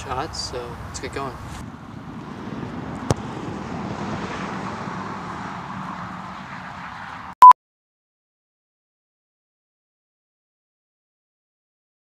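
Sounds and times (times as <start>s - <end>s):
outdoor background noise: 0.0s - 7.4s
soccer ball kick: 3.0s - 3.3s.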